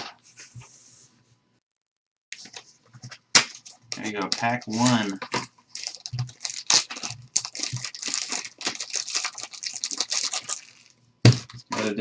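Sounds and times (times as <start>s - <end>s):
plastic wrap crinkling and tearing: 3.9s - 12.0s.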